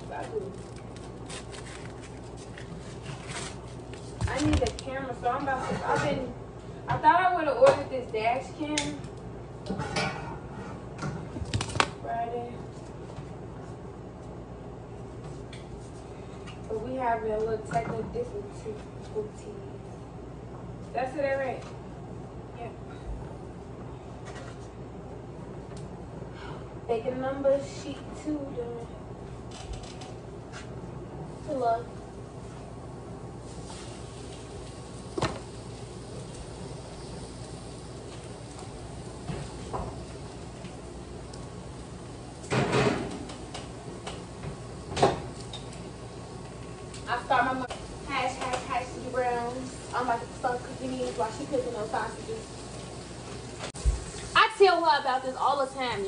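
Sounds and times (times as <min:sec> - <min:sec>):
steady hiss: 0:33.4 - 0:42.6, 0:43.2 - 0:56.0.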